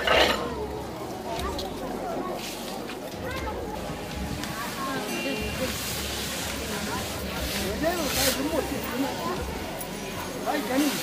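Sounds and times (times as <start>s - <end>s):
crowd voices: 0.0s - 11.0s
body sliding on stone hiss: 4.4s - 11.0s.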